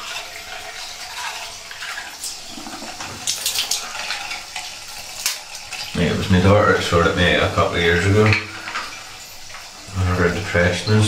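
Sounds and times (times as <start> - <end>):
water running from tap: 0.0 - 11.0.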